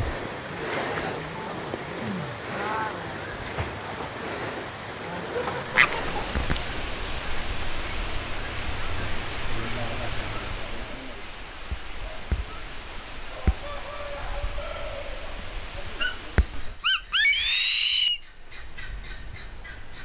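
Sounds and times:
outdoor background noise: 0.0s - 20.0s
eagle calling: 5.6s - 6.6s, 15.9s - 19.3s.

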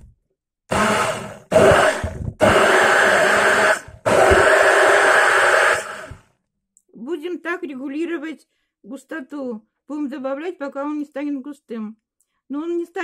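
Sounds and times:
immersion blender running: 0.7s - 6.2s.

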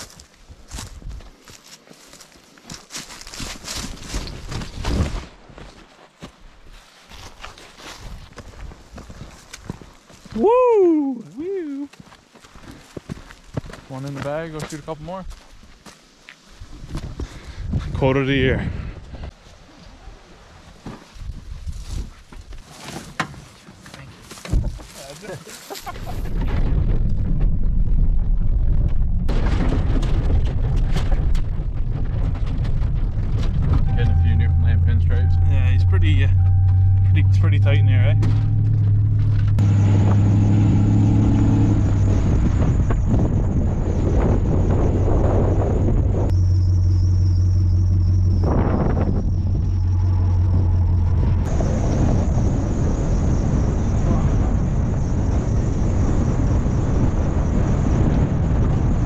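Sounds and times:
road noise on gravel: 0.0s - 10.7s, 11.3s - 18.6s, 19.3s - 55.9s
truck engine hum: 33.0s - 54.0s.

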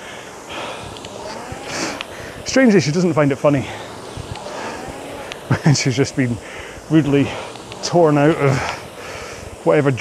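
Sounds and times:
rowing machine flywheel whooshing: 0.0s - 10.0s.

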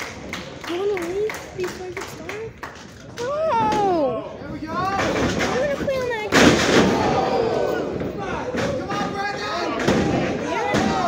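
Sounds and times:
crowd shouting: 6.8s - 11.0s.

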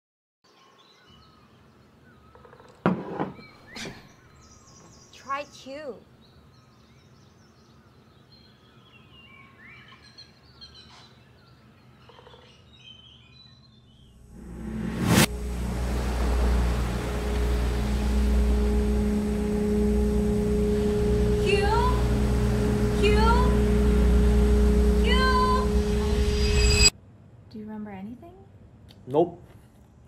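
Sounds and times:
faint bird chirps: 0.5s - 14.1s
low rumble with drone tone: 14.3s - 26.9s
rising swell ending in sharp hit: 14.3s - 26.9s.

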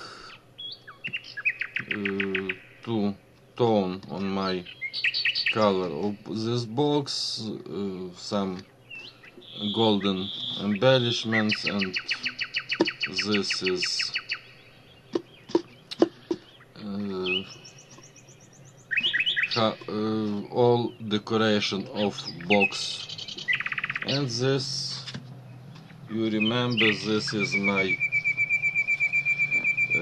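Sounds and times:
small bird singing: 0.0s - 30.0s.

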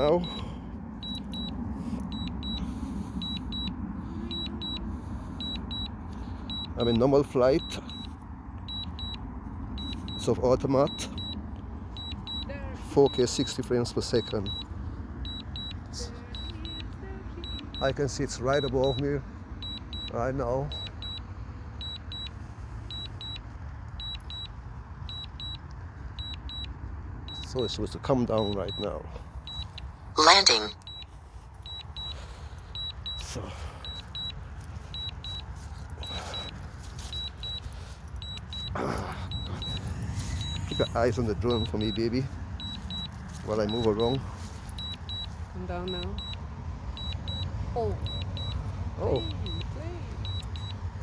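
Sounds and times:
high-pitched double beeps: 0.0s - 8.1s, 9.8s - 11.4s, 12.0s - 22.3s, 26.2s - 50.8s
steady low rumble: 0.0s - 30.2s, 30.8s - 51.0s.

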